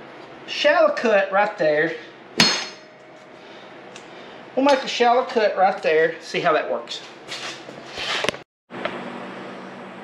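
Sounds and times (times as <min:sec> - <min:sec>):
metallic clank with ring: 0:02.4 - 0:03.0.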